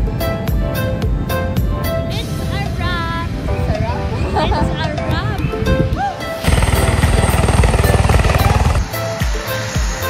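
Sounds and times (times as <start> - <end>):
music with a steady beat: 0.0 - 2.0, 7.4 - 10.0
high turbine whine: 6.3 - 10.0
helicopter rotor pulsing: 6.4 - 9.0.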